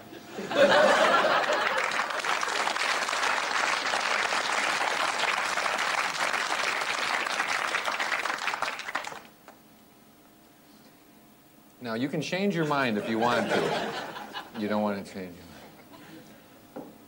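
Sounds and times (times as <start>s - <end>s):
audience applauding: 0.9s - 9.3s.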